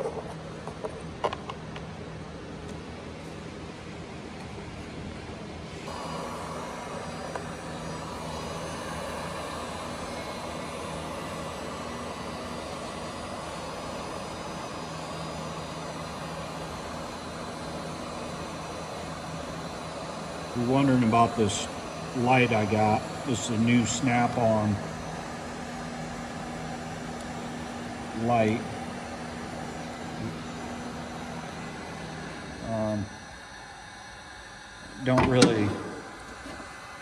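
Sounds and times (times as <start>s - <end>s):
heat gun blowing air: 5.7s - 37.0s.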